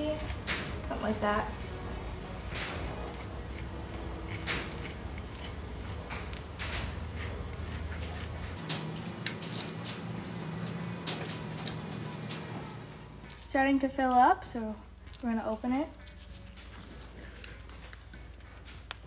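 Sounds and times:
scratcher raking wax cappings: 0:00.0 - 0:13.5
low steady hum: 0:00.0 - 0:19.0.

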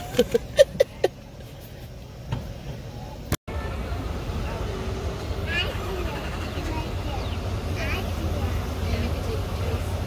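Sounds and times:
distant voices: 0:00.0 - 0:10.0.

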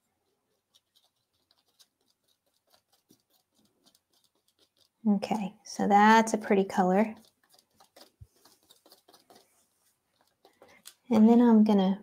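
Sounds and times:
palette knife scraping paint: 0:00.0 - 0:11.5.

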